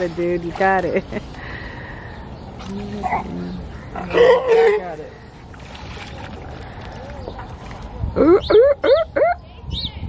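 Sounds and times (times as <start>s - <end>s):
wind rumble on microphone: 6.2s - 10.0s.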